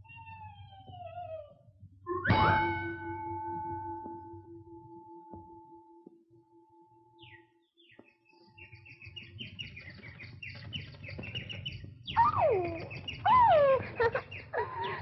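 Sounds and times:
cartoon bird chirping: 12.1 - 14.0.

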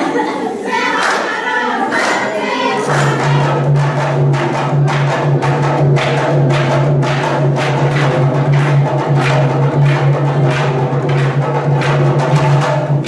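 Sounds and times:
barrel drums: 2.9 - 13.0.

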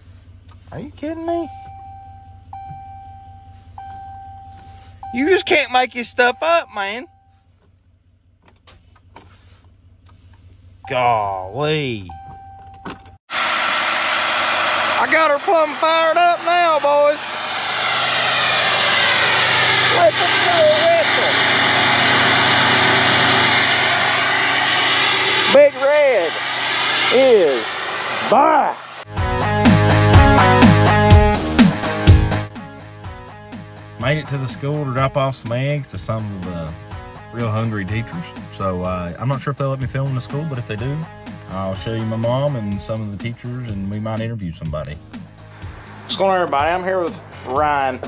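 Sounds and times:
low steady hum: 0.1 - 13.1
dashboard warning chime: 1.1 - 7.5, 10.8 - 13.2
pickup truck engine running: 14.4 - 25.5, 45.0 - 48.0.

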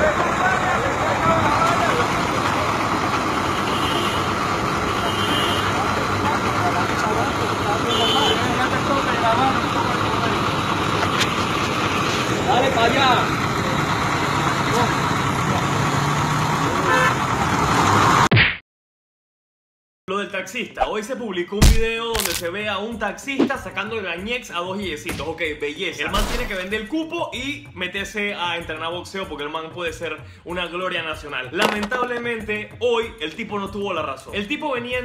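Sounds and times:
vehicle engines running: 0.0 - 18.3
car horn toots: 3.5 - 5.8, 7.8 - 8.6, 16.9 - 17.2.

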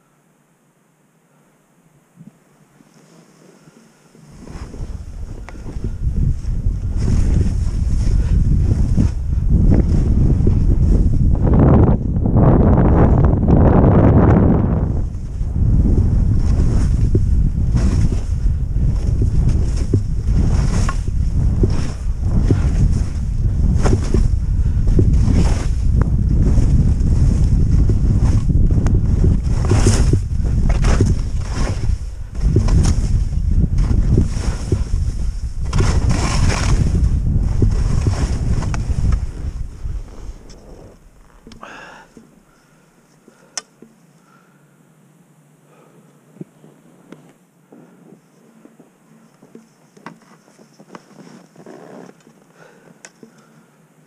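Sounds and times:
skis hissing through snow: 2.8 - 9.1, 17.7 - 28.5, 29.4 - 41.0
wind buffeting microphone: 4.4 - 42.0.

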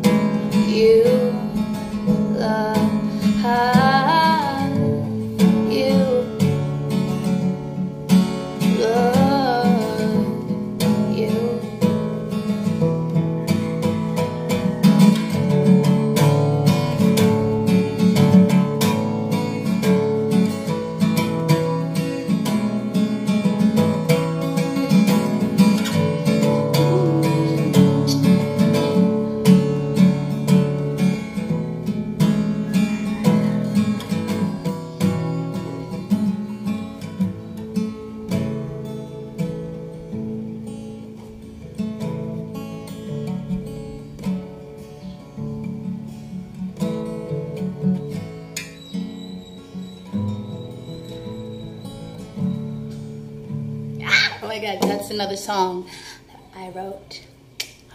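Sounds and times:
acoustic guitar strumming: 0.0 - 56.8.

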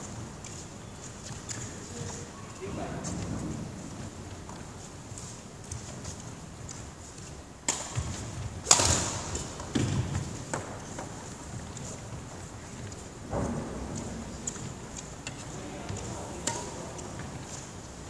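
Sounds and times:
rackets striking shuttlecocks: 7.6 - 11.9, 13.2 - 17.9.

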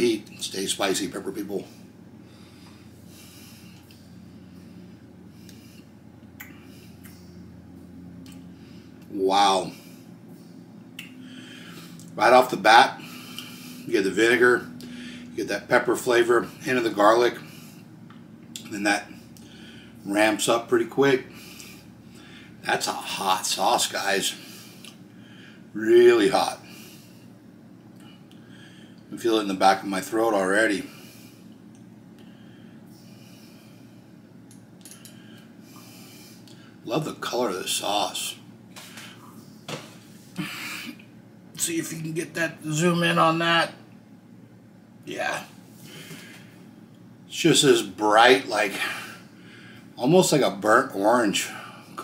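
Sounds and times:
low room hum: 0.0 - 52.0
faint breathing: 1.6 - 7.5, 8.4 - 9.1, 9.7 - 12.1, 13.0 - 13.9, 14.8 - 15.4, 19.1 - 20.1, 21.2 - 22.6, 24.3 - 25.8, 26.6 - 27.4, 28.0 - 29.1, 30.8 - 31.6, 32.2 - 34.3, 34.9 - 36.9, 45.8 - 46.7, 48.7 - 50.0
man breathing through nose: 35.0 - 36.8.

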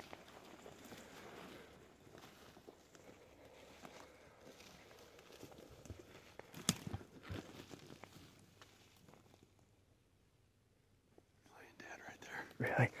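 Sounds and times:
footsteps in dry grass: 0.0 - 9.6
twigs snapping: 5.2 - 8.8
person whispering: 11.5 - 13.0.

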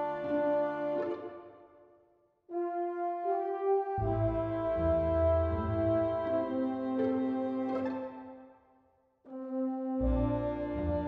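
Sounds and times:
instrumental film score music: 0.0 - 11.0.

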